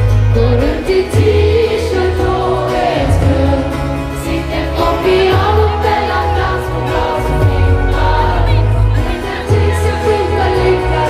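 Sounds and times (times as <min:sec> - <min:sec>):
live pop band: 0:00.0 - 0:11.0
woman singing into microphone: 0:00.0 - 0:11.0.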